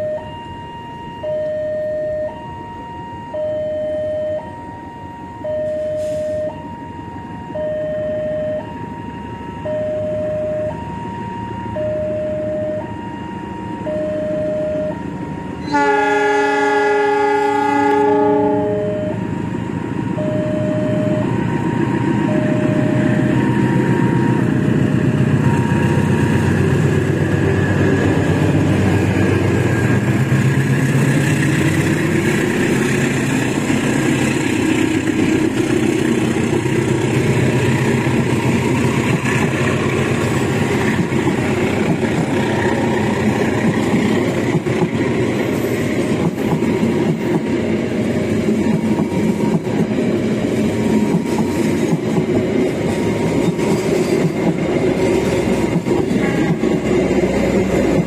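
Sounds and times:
level crossing warning tones: 0:00.0 - 0:46.4
diesel train engine running: 0:04.8 - 0:58.0
locomotive horn blast: 0:05.7 - 0:06.4, 0:15.6 - 0:19.3, 0:56.0 - 0:57.0
train wheels rolling on rails: 0:15.0 - 0:58.0.

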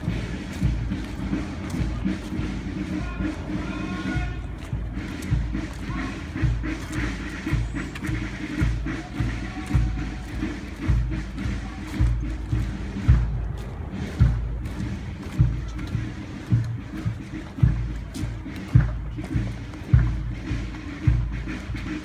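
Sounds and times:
bass drum beating: 0:00.0 - 0:22.0
military marching band: 0:00.0 - 0:22.0.

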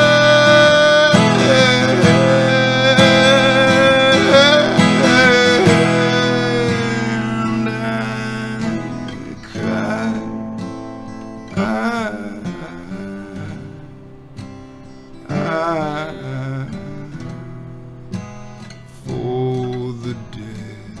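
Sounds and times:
man singing long note: 0:00.0 - 0:10.4
strummed acoustic guitar: 0:00.0 - 0:21.0.

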